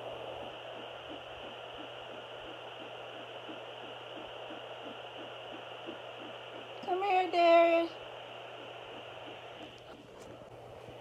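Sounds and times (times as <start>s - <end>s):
static hiss over low hum: 0.0s - 11.0s
probe rubbing crackles: 0.4s - 11.0s.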